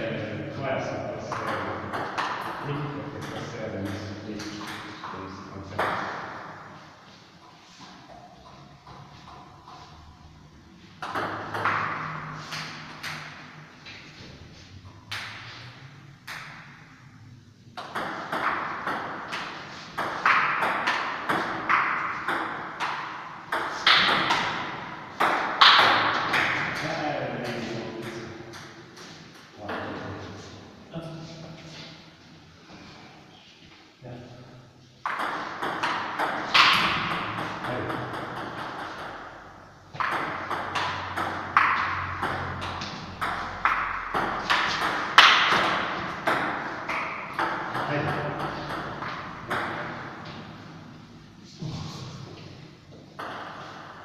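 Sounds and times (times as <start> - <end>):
people talking: 0.0 - 2.0, 2.6 - 6.0, 26.8 - 28.3, 29.6 - 31.4, 37.6 - 38.2, 47.8 - 48.8.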